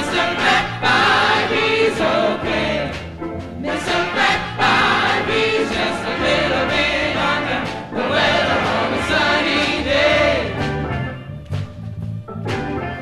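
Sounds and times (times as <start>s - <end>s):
vocal ensemble singing chords: 0.0s - 11.1s
jazz band with bass line: 0.0s - 13.0s.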